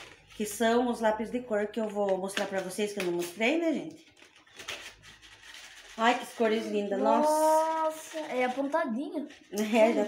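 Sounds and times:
pencil box rustling and scraping: 0:04.1 - 0:09.9.

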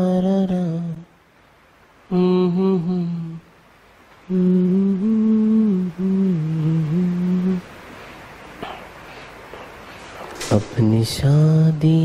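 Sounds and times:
man humming: 0:00.0 - 0:01.1, 0:02.1 - 0:03.5, 0:04.2 - 0:07.7.

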